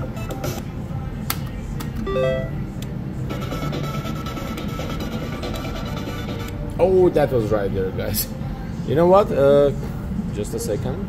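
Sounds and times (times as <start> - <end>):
slot machine electronic tones: 2.0 - 2.7
rising electronic chime: 2.1 - 2.7.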